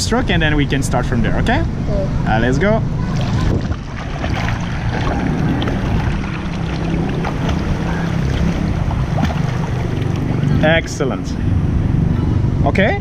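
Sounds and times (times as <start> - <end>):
water churning and splashing: 2.8 - 11.1.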